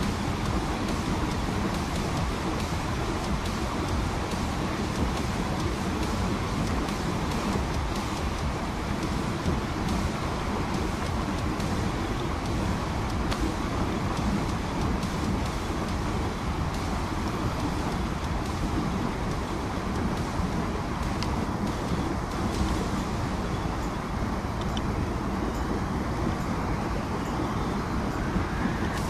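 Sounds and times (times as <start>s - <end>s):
fast river rushing: 0.0s - 29.0s
wind buffeting microphone: 0.0s - 29.0s.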